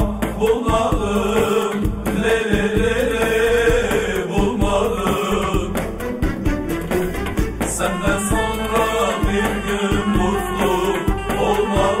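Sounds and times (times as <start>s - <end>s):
drum strokes: 0.0s - 12.0s
folk song with sung melody: 0.0s - 12.0s.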